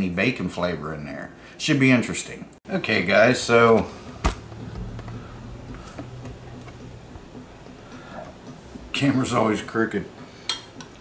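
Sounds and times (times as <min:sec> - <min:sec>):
steady low hum: 0:02.8 - 0:10.4.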